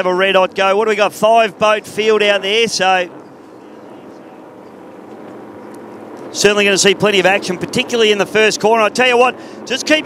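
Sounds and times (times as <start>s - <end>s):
faint drone of race boats: 0.0s - 10.0s.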